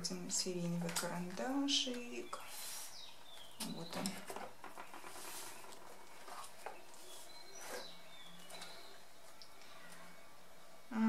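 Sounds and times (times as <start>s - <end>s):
pencils clicking and rustling: 0.4s - 2.3s, 3.2s - 10.0s.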